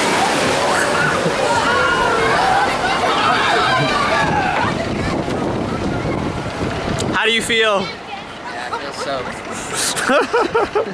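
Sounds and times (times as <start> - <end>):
wind rushing: 0.0 - 7.2
wind buffeting microphone: 0.0 - 8.1.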